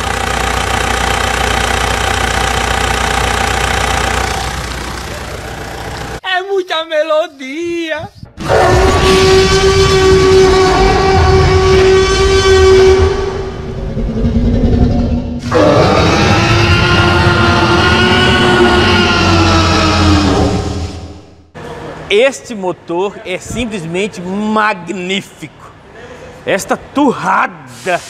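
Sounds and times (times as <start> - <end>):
dinosaur roars: 8.4 - 21.4.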